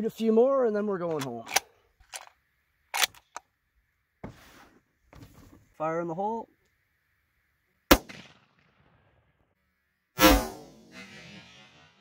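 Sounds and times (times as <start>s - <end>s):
rifle bolt clicking: 2.9s - 3.4s.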